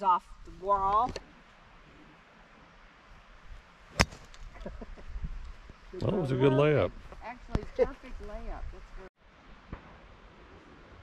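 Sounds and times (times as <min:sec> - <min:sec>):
golf club striking ball: 0:03.9 - 0:04.4.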